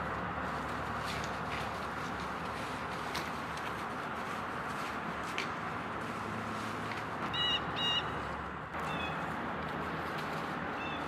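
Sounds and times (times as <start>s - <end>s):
bird calling harshly: 7.3s - 8.2s, 8.8s - 9.3s.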